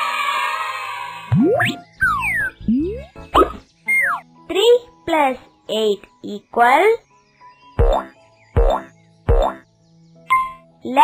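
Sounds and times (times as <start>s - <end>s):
child-like voice speaking: 4.5s - 7.0s.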